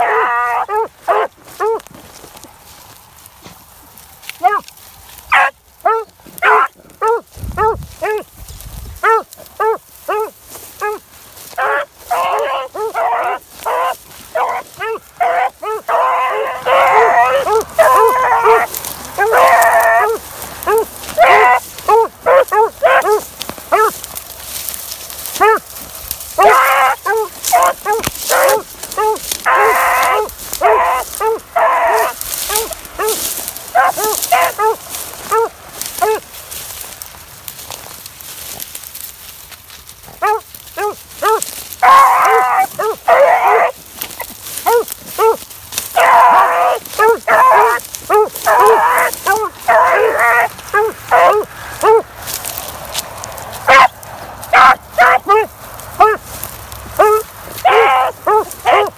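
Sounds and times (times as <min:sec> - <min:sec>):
dogs' short chop barks: 0:00.0 - 0:01.9, 0:04.4 - 0:04.7, 0:05.3 - 0:08.3, 0:09.0 - 0:11.0, 0:11.6 - 0:24.0, 0:25.3 - 0:36.2, 0:40.1 - 0:52.1, 0:53.6 - 0:56.2, 0:57.0 - 0:58.9
dogs' drawn-out bawls: 0:00.0 - 0:02.2, 0:04.4 - 0:04.7, 0:05.3 - 0:08.3, 0:09.0 - 0:24.0, 0:25.2 - 0:36.3, 0:40.0 - 0:56.4, 0:57.0 - 0:58.9
beagles baying: 0:00.0 - 0:03.6, 0:04.2 - 0:08.3, 0:08.9 - 0:38.6, 0:40.0 - 0:58.9.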